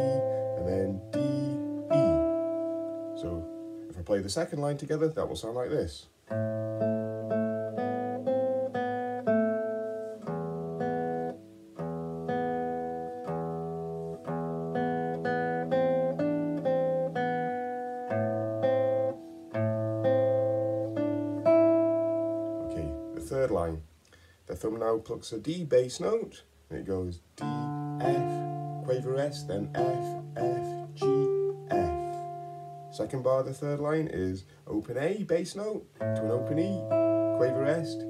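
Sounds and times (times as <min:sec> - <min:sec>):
nylon-string guitar fingerstyle: 0:00.0 - 0:38.0.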